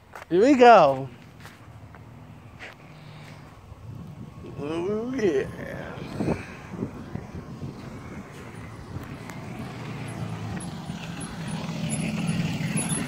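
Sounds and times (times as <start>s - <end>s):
bus engine drone: 1.0s - 13.0s.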